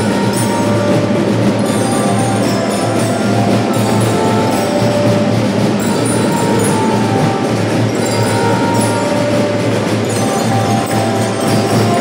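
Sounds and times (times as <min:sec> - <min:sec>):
marching drum band: 0:00.0 - 0:12.0.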